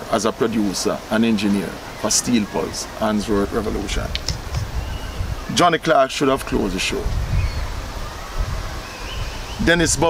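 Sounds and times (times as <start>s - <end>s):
wind buffeting microphone: 1.8s - 10.0s.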